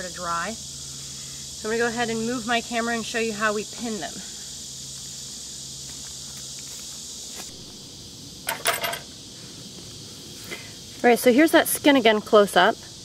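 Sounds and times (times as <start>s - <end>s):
steady high hiss: 0.0s - 13.0s.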